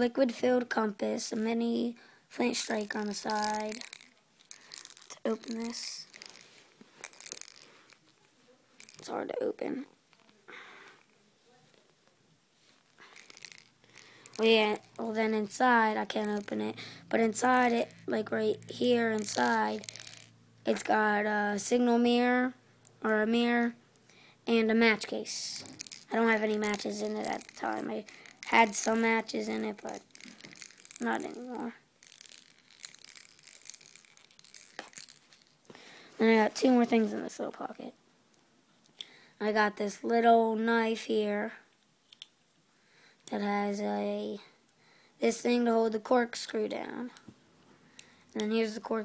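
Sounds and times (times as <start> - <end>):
plastic whistle handling rustles: 2.7 - 9.1, 12.7 - 15.0, 25.6 - 35.8.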